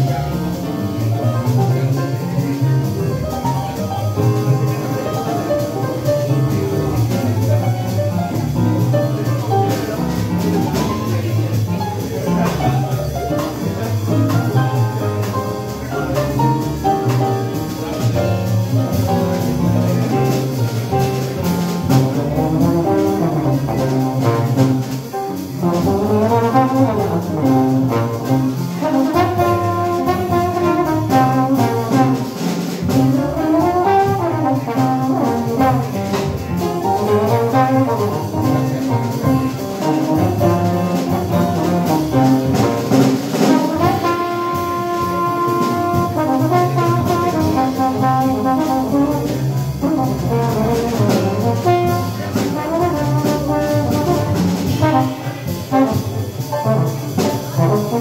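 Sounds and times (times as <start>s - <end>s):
jazz band playing: 0.0s - 58.0s
trombone playing lines: 0.0s - 58.0s.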